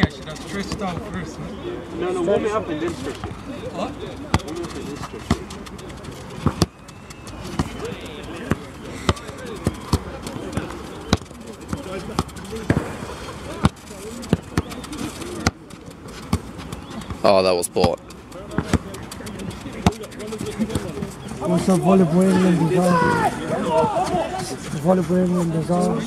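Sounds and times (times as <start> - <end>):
voices chattering: 0.0 - 26.0
foot kicking ball thuds: 17.9 - 19.1.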